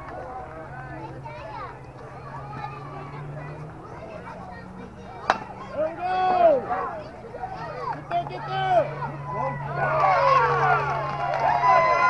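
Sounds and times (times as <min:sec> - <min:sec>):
people yelling: 0:00.0 - 0:12.0
bat hitting ball: 0:05.2 - 0:05.9.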